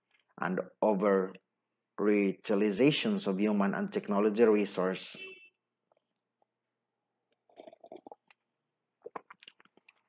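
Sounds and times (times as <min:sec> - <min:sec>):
mouth clicks and lip smacks: 0:07.4 - 0:08.4, 0:09.0 - 0:10.0.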